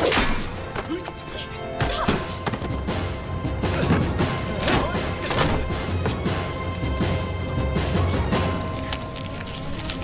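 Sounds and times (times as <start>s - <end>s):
dramatic film score: 0.0s - 10.0s.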